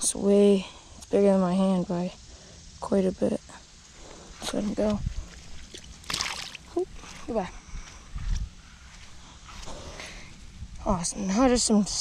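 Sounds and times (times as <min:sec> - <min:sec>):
fish splashing into pond water: 0:05.5 - 0:06.8.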